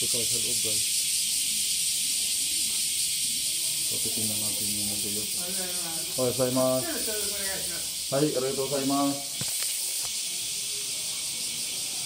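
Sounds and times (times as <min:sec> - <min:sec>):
faint voices: 0:00.0 - 0:12.0
steady high-pitched hiss: 0:00.0 - 0:12.0.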